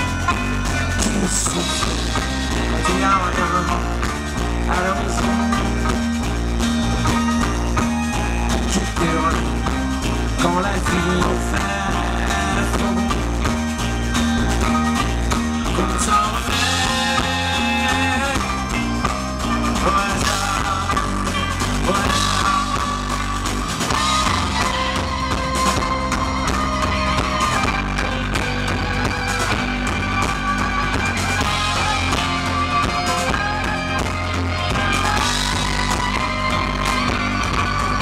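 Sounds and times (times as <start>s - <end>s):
held melody line: 0.0s - 38.0s
live folk-rock band: 0.0s - 38.0s.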